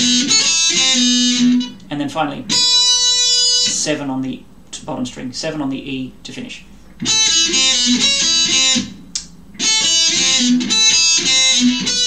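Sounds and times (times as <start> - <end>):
electric guitar lead phrase: 0.0 - 1.8, 2.4 - 3.9, 7.0 - 9.0, 9.6 - 12.0.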